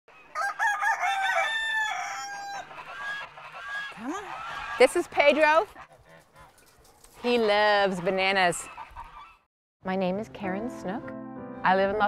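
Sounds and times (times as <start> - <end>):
rooster crowing: 0.2 - 4.8.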